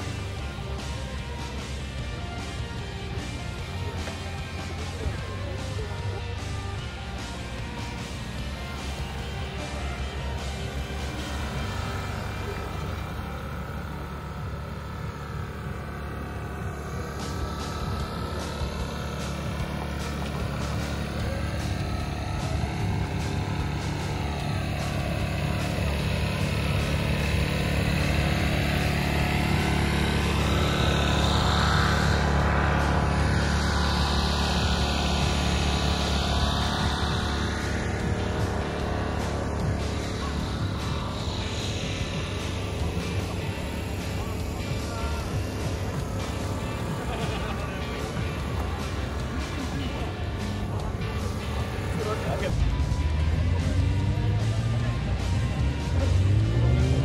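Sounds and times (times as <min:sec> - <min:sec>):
background music: 0:00.0 - 0:57.0
engine drone: 0:00.0 - 0:57.0.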